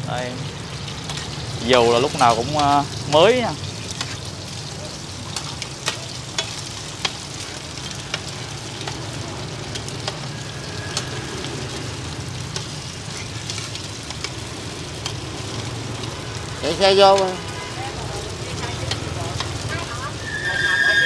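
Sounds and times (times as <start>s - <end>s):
food sizzling in oil: 0.0s - 21.0s.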